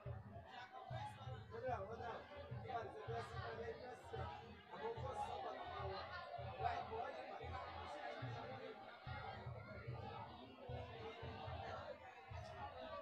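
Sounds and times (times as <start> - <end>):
chatter of many voices in a hall: 0.0 - 13.0.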